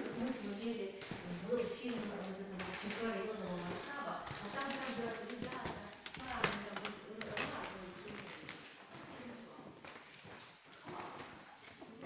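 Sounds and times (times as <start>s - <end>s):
footsteps on wooden floor: 0.0s - 12.0s.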